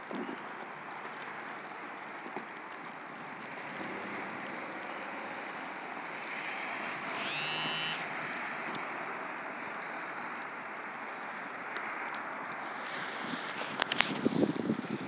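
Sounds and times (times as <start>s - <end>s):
rain and wet snow on pavement: 0.0s - 15.0s
rising high tone: 7.1s - 8.0s.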